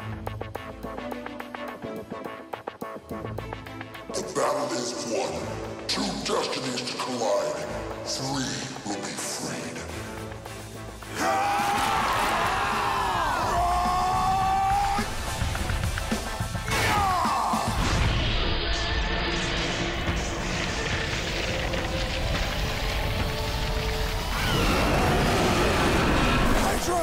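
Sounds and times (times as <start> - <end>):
driving background music: 0.0 - 27.0.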